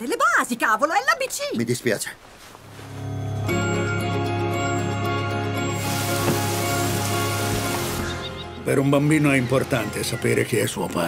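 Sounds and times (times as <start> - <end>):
background music: 2.7 - 11.0
rain falling: 5.6 - 8.5.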